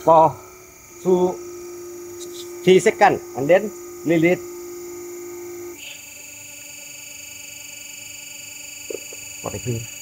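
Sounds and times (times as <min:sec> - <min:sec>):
press machine buzzing: 0:00.0 - 0:10.0
thin high whine: 0:00.0 - 0:10.0.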